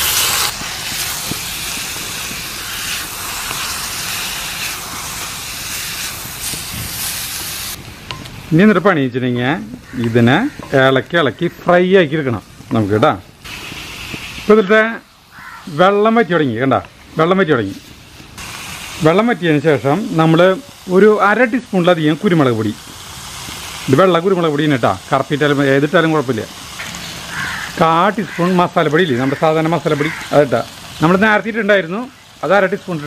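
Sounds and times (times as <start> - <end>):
meat and onions sizzling in a pan: 0.0 - 8.7, 9.6 - 33.0
person speaking: 8.4 - 13.3, 14.5 - 17.8, 19.0 - 22.8, 27.8 - 33.0
person talking: 8.5 - 13.3, 19.0 - 22.8, 27.8 - 33.0.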